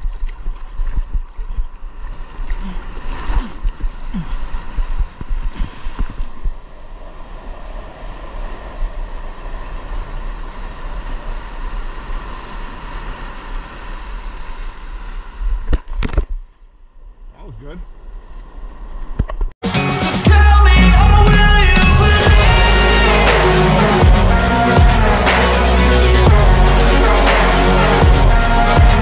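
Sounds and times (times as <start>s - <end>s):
wind on microphone: 0.0s - 16.2s
whitewater rushing and splashing: 20.1s - 29.0s.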